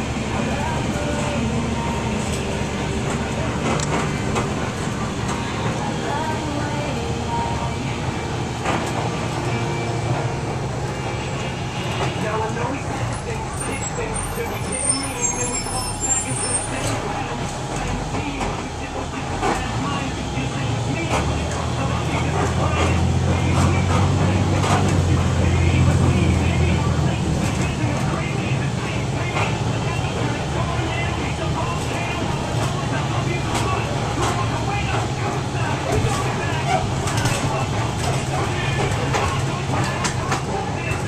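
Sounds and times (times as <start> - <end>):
bus body rattling and clicking: 0.0 - 41.0
bus diesel engine running: 0.0 - 41.0.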